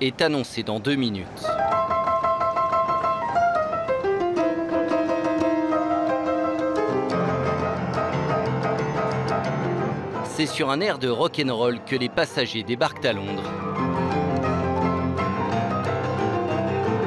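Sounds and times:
upright piano playing: 1.4 - 17.0.

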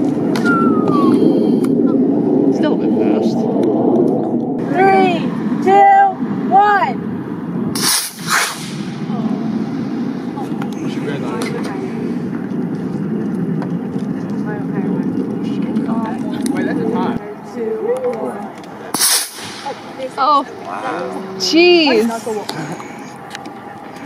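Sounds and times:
low rumble: 0.0 - 24.0
rocket launch whoosh: 7.6 - 10.4, 18.9 - 20.0
sharp burst of noise: 7.6 - 10.5, 18.9 - 20.4
faint voices: 9.0 - 24.0.

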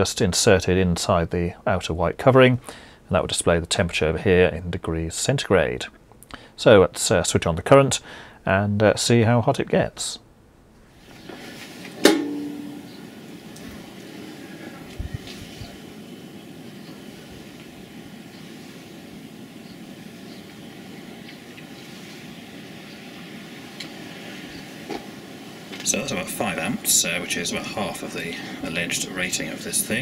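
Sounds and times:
faint electrical hum: 0.0 - 30.0
outdoor wind noise: 0.0 - 30.0.

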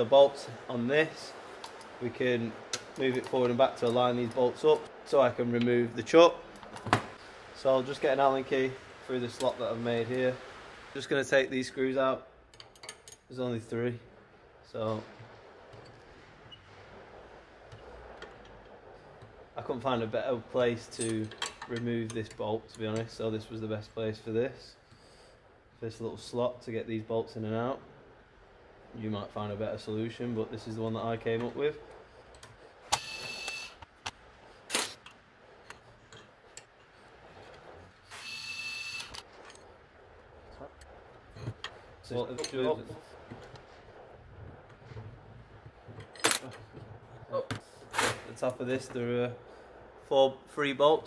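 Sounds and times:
steady background hum: 0.0 - 51.0.

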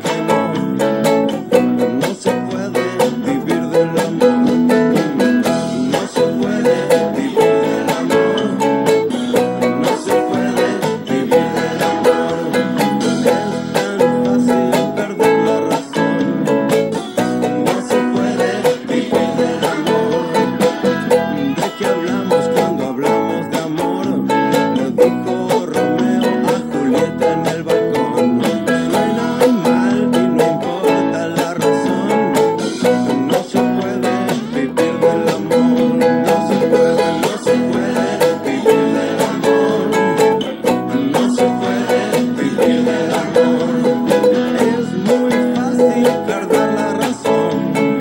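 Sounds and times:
ukulele strumming: 0.0 - 48.0.

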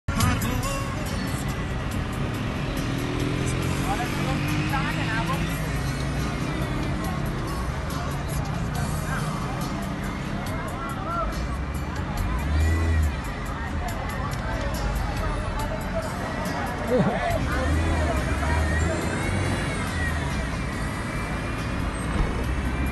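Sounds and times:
car engine: 0.1 - 22.9
crowd voices outside: 0.1 - 22.9
road noise: 0.1 - 22.9.

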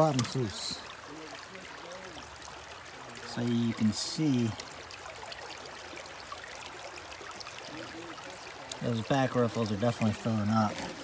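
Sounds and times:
creek water running: 0.0 - 11.0.

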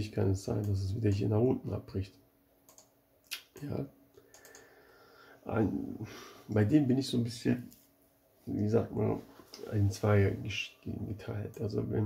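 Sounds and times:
man talking: 0.0 - 2.2, 3.3 - 3.9, 5.4 - 7.8, 8.5 - 12.0
computer clicks: 2.7 - 3.4, 4.2 - 4.7.

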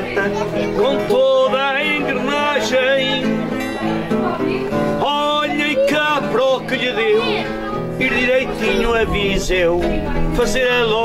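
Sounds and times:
person singing: 0.0 - 4.0, 4.9 - 11.0
acoustic guitars playing: 0.0 - 11.0
small plucked string instrument: 0.0 - 11.0.

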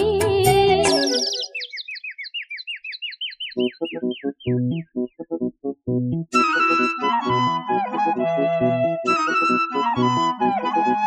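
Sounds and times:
person singing with accompaniment: 0.0 - 1.3.

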